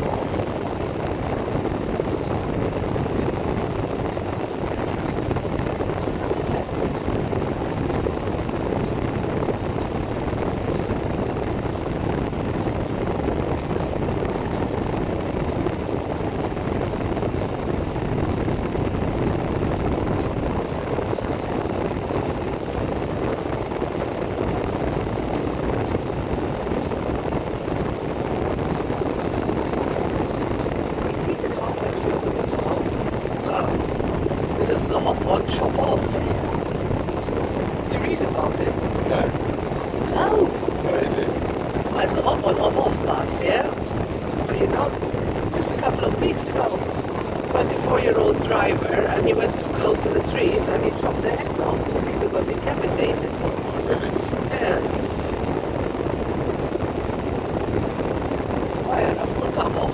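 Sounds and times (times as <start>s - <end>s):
car cabin road and engine noise: 0.0s - 59.9s.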